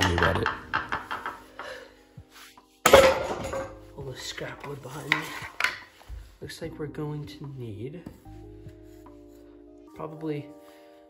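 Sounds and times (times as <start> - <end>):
wooden branch clattering on concrete: 2.9 - 3.8.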